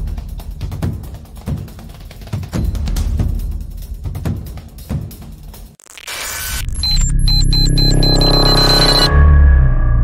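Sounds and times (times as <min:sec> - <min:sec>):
electronic intro music: 0:05.8 - 0:10.0
high digital beeps: 0:06.0 - 0:09.2.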